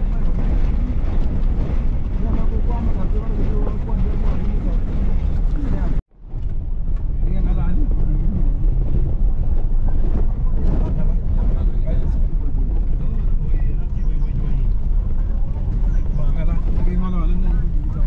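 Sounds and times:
car engine and tyre rumble: 0.0 - 18.0.

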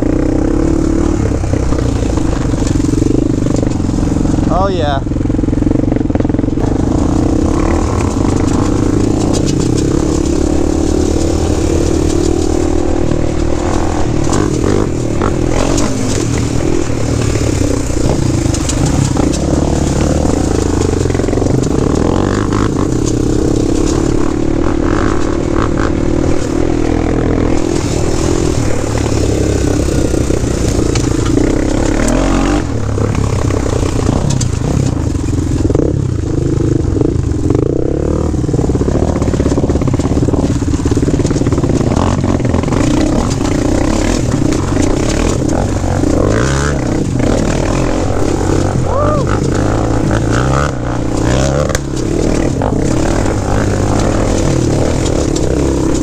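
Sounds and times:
knocks and clatter over rocks: 0.0 - 56.0
quad engine revving: 0.0 - 56.0.

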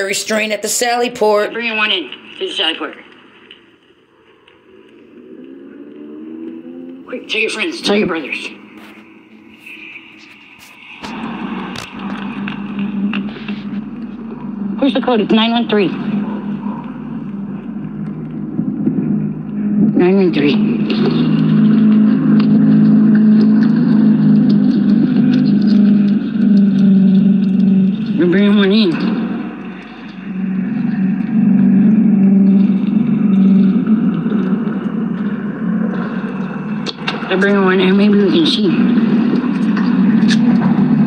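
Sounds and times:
low hum: 0.0 - 41.0
vehicle engine running: 4.2 - 41.0.

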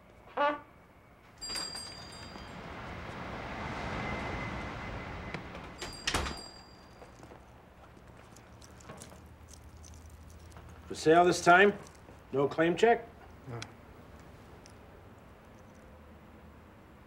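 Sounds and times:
street traffic noise: 0.0 - 17.0
door bell ringing: 1.4 - 3.2, 5.7 - 7.5
glass door opening click: 5.6 - 6.4.

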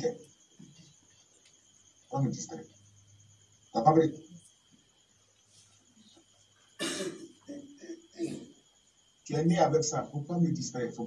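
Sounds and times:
person clearing throat: 6.8 - 8.5
person coughing: 6.8 - 8.5.

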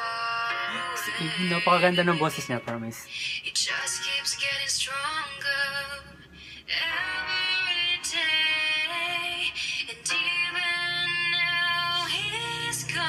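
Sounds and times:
soft backing music: 0.0 - 13.0
woman singing a slow ballad: 0.0 - 13.0.

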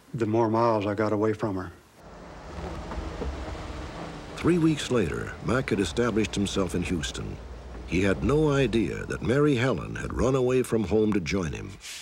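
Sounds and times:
steady hiss: 1.6 - 10.4
bus engine rumbling: 2.0 - 10.6.

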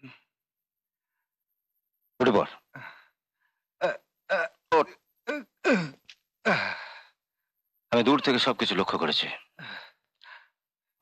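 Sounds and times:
person sighing: 5.3 - 7.0.

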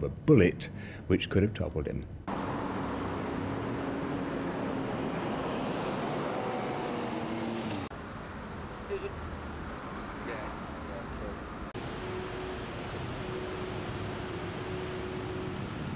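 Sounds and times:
road traffic passing: 2.1 - 15.9
street noise: 2.1 - 15.9.

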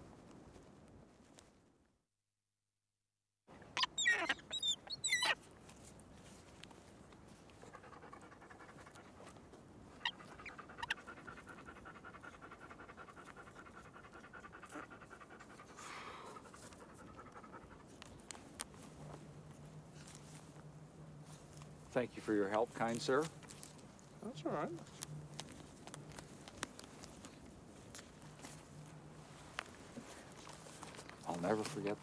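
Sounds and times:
dog high cries: 3.8 - 5.4
dog panting: 7.6 - 9.4, 10.0 - 18.2.

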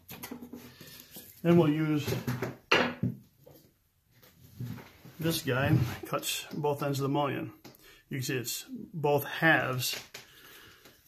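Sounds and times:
man speaking: 1.4 - 2.3, 5.2 - 10.0.

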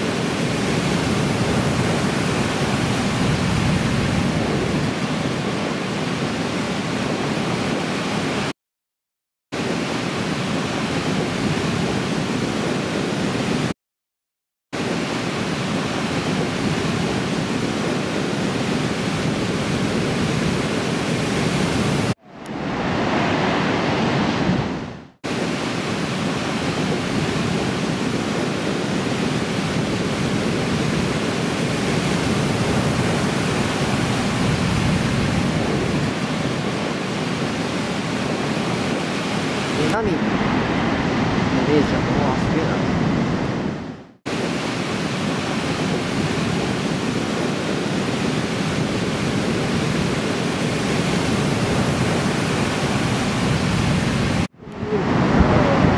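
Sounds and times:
ocean surf breaking: 0.0 - 8.5, 9.6 - 13.7, 14.8 - 55.9.

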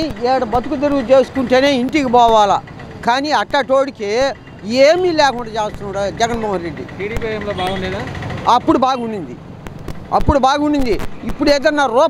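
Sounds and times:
man talking into a microphone: 0.0 - 9.4, 10.1 - 12.0.

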